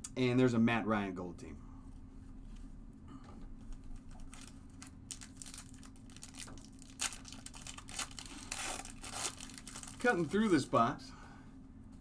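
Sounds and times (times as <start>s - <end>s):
faint steady hum: 0.0s - 12.0s
foil wrapper crinkling and tearing: 3.7s - 10.7s.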